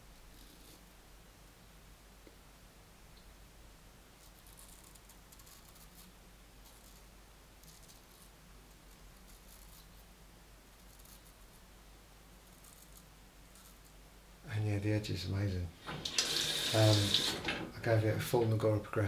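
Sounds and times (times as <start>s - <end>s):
razor scraping stubble: 4.2s - 7.0s.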